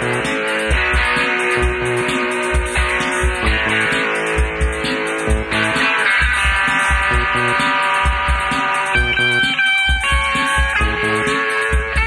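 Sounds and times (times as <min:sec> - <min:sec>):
live band music: 0:00.0 - 0:12.0
kick drum beat: 0:04.4 - 0:05.6, 0:06.2 - 0:07.4, 0:08.0 - 0:09.2, 0:09.9 - 0:12.0.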